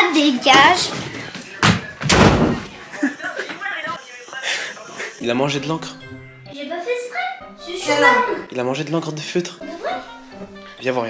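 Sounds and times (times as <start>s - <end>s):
door slamming shut: 1.6s - 2.7s.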